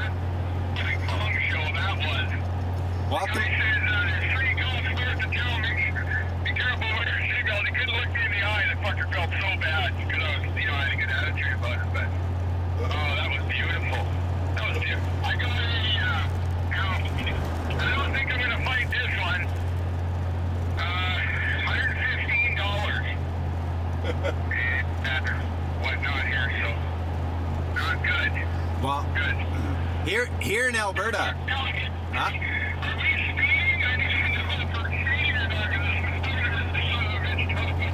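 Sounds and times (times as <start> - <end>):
engine and road noise drone: 0.0 - 37.9
thin-sounding voices: 3.0 - 19.6.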